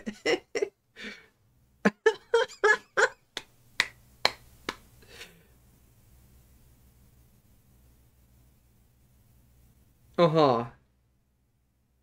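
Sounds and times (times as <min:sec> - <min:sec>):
man laughing: 0:00.0 - 0:00.8, 0:01.8 - 0:03.3
hands clapping: 0:03.4 - 0:04.9.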